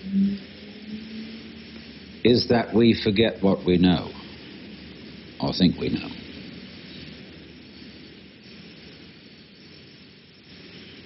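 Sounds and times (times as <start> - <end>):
recording hiss and rumble: 0.0 - 11.0.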